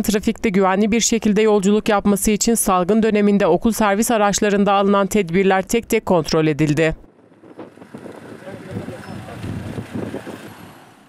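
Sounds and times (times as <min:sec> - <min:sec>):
minibus engine running: 0:05.6 - 0:11.0
wind on microphone: 0:07.0 - 0:11.0
faint voices: 0:08.2 - 0:09.8.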